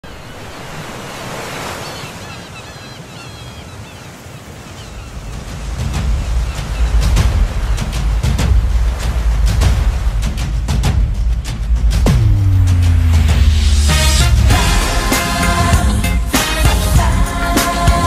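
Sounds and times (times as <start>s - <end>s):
sea waves washing on shore: 0.0s - 18.0s
music with deep bass and drums: 5.8s - 18.0s.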